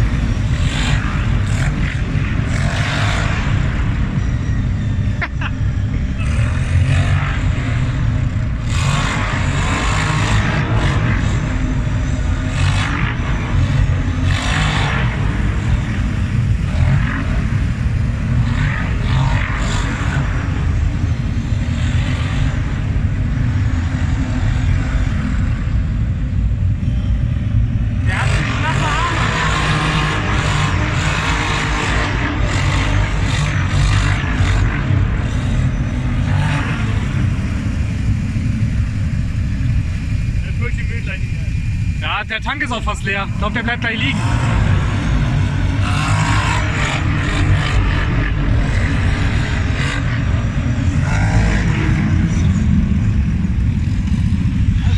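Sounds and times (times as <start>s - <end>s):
quad engine rumbling: 0.0s - 54.9s.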